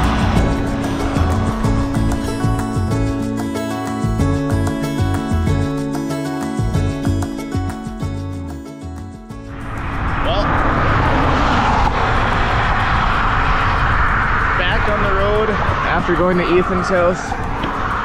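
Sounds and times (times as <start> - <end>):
wind buffeting microphone: 0.0 - 3.4, 9.4 - 18.0
acoustic guitar music: 0.0 - 10.1.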